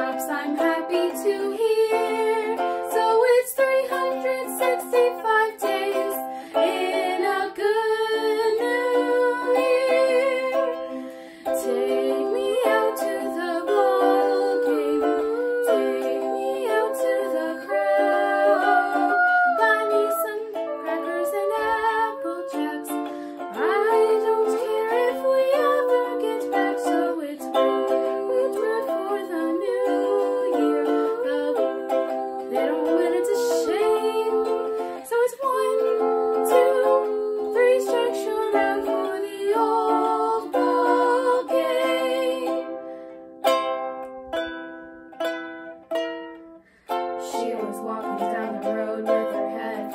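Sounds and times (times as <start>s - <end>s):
girl singing: 0.0s - 42.8s, 47.1s - 49.9s
instrumental accompaniment: 0.0s - 49.9s.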